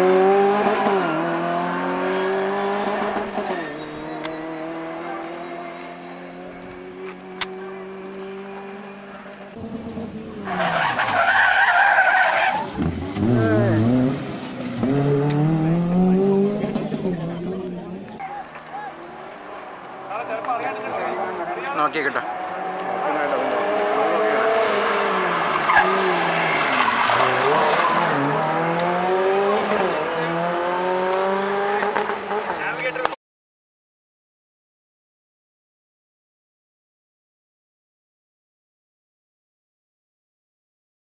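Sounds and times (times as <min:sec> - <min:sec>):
rally car engines revving: 0:00.0 - 0:33.1.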